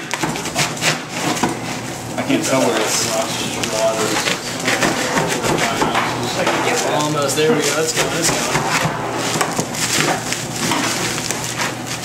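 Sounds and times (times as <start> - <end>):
people talking indistinctly: 2.2 - 9.4.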